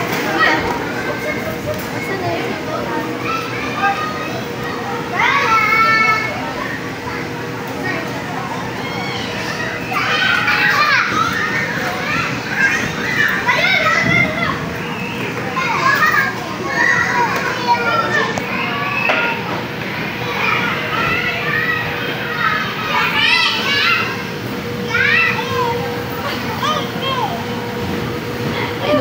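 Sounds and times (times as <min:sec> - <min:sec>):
children shouting and squealing: 0:00.3 - 0:27.7.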